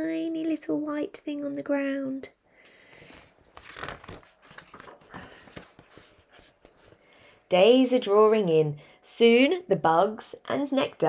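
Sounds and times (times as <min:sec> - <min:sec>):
book pages rustling: 0:03.0 - 0:07.4.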